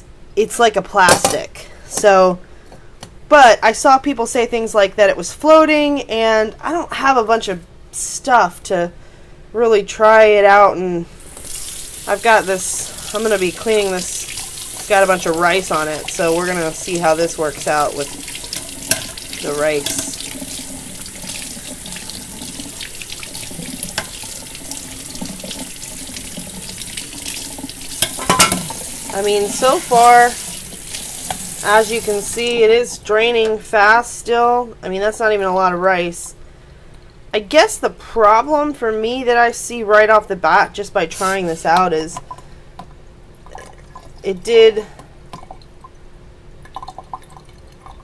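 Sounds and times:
tap water running into sink: 0:11.3 - 0:32.6
water draining through strainer: 0:11.3 - 0:32.6.

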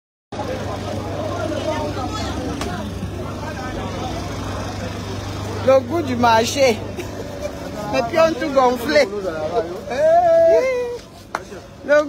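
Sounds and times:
people talking: 0:00.3 - 0:12.0
road traffic hum: 0:00.3 - 0:12.0.

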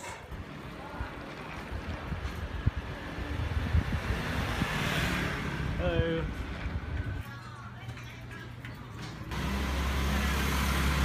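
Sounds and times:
street traffic rumble: 0:00.0 - 0:11.0
wind rushing over microphone: 0:00.3 - 0:07.2.

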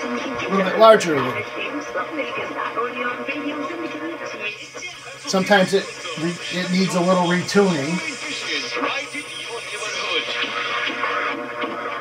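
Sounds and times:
voice over radio speaker: 0:00.0 - 0:10.5
music over radio speaker: 0:00.0 - 0:12.0
radio hiss: 0:00.0 - 0:12.0
steady interference tones: 0:00.0 - 0:12.0.

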